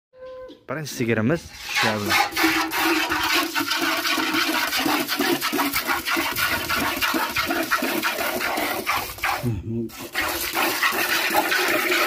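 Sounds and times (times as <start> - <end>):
milk squirting into metal bucket: 1.5 - 12.0.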